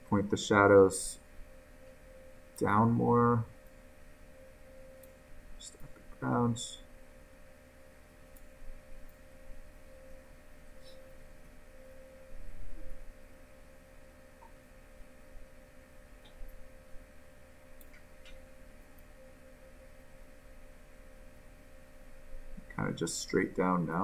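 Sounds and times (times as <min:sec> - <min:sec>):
faint steady hum: 0:00.0 - 0:24.0
soft clicks: 0:05.0 - 0:06.0, 0:17.8 - 0:19.1.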